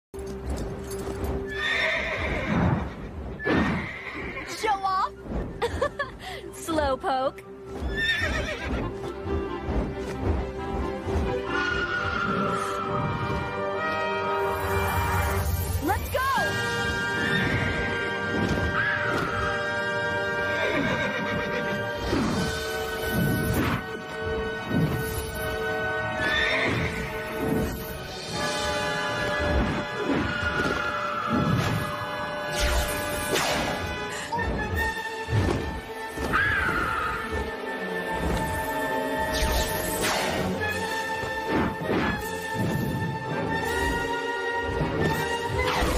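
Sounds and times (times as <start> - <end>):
orchestral film music: 0.2 - 45.9
horse whinnying: 1.5 - 4.6, 7.9 - 8.9, 20.4 - 22.2.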